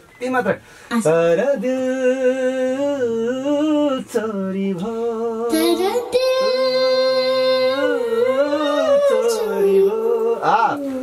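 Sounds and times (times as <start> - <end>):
man singing unaccompanied: 1.0 - 11.0.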